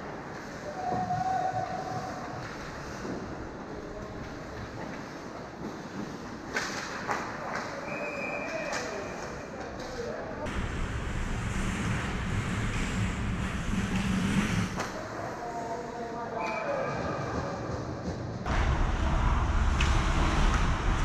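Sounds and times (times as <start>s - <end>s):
skate blades scraping ice: 11.1s - 15.0s.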